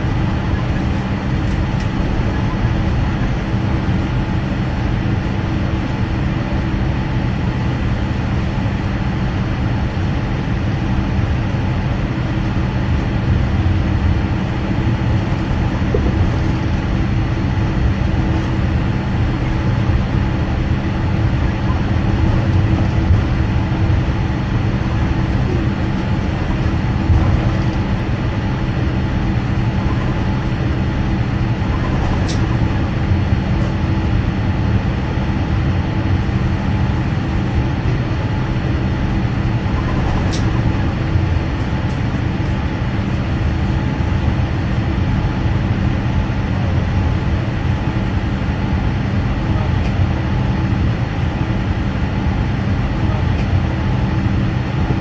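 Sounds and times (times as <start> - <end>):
jet engines droning at idle: 0.0 - 55.0.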